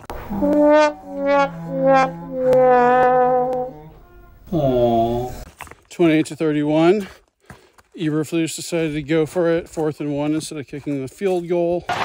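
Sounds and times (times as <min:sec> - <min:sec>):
descending sad trombone: 0:00.0 - 0:05.4
person speaking: 0:03.6 - 0:05.4.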